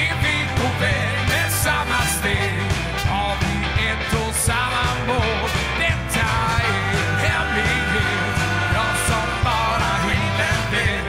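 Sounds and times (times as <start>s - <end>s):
bass guitar: 0.0s - 11.0s
drums: 0.0s - 11.0s
electric guitar: 0.0s - 11.0s
keyboards: 0.0s - 11.0s
trumpet and trombone: 1.4s - 3.4s, 5.4s - 11.0s.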